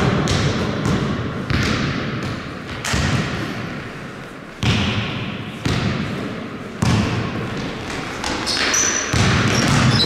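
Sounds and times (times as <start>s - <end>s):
basketball bouncing on wooden floor: 0.0s - 3.2s, 6.8s - 10.0s.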